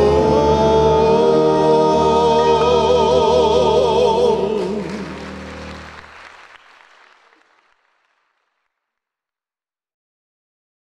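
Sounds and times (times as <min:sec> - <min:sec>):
audience applauding: 0:04.3 - 0:08.8.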